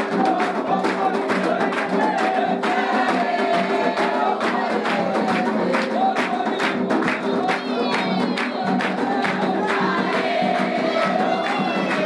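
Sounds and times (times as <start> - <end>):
group singing a chant: 0.0 - 12.0
hand drums beating: 0.0 - 12.0.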